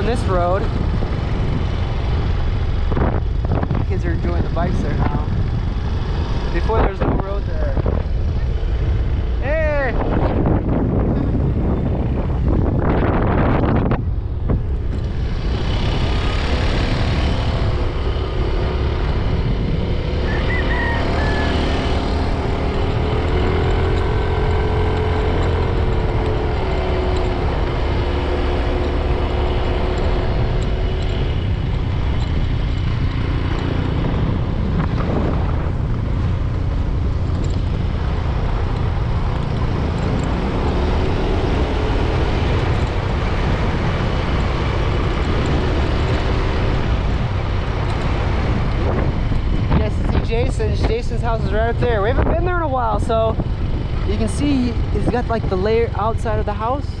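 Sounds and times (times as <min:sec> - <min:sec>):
motorcycle engine running: 0:00.0 - 0:57.0
wind rush on microphone: 0:00.0 - 0:57.0.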